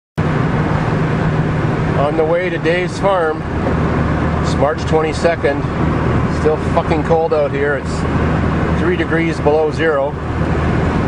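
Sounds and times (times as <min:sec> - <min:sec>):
road and tyre noise: 0:00.2 - 0:11.0
van engine drone: 0:00.2 - 0:11.0.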